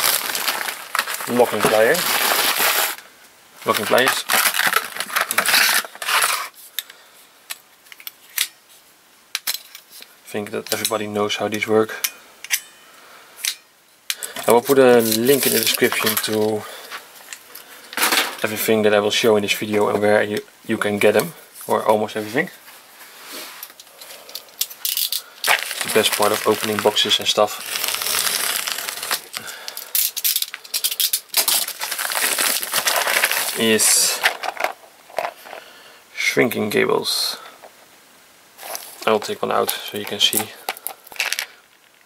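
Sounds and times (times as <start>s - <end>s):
plastic mailer bag crinkling: 0.0s - 3.0s, 3.6s - 6.6s, 14.4s - 17.1s, 24.2s - 35.6s, 38.6s - 42.0s
sharp plastic crackles: 0.0s - 3.0s, 3.6s - 8.6s, 14.1s - 18.5s, 23.6s - 35.6s, 38.6s - 42.0s.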